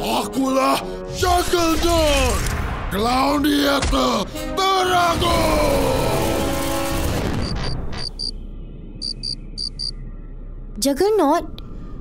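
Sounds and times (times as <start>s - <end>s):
cartoon cricket chirps: 7.3s - 8.4s, 9.0s - 10.0s.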